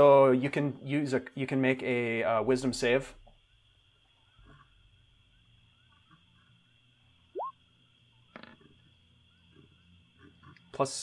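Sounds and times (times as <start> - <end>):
faint steady hiss: 0.0 - 11.0
short rising chirp: 7.4 - 7.6.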